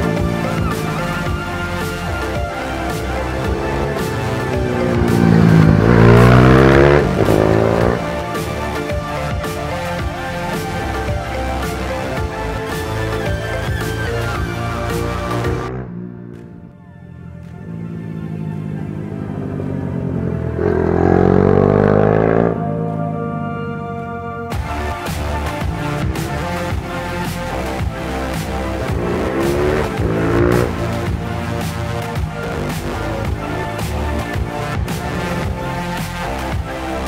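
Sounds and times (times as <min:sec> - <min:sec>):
background music: 0:00.0 - 0:37.0
motorcycle engine revving past: 0:02.9 - 0:08.1, 0:17.4 - 0:24.1.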